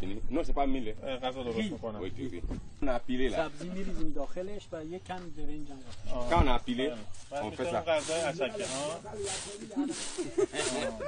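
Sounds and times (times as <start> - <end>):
voices talking: 0.0 - 11.0
flour sifting on a tray: 7.3 - 11.0.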